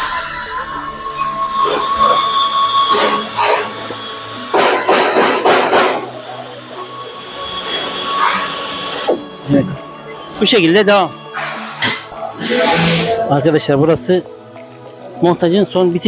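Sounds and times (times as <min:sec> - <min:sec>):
tapping machine motor whine: 0:00.0 - 0:10.5
metal cutting bursts: 0:01.2 - 0:09.4.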